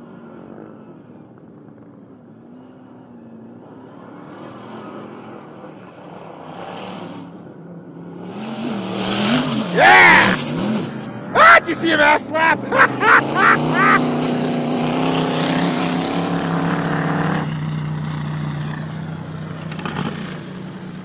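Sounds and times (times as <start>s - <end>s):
sand buggy engine revving: 2.3s - 21.0s
loud shout: 9.7s - 10.4s, 11.3s - 14.0s.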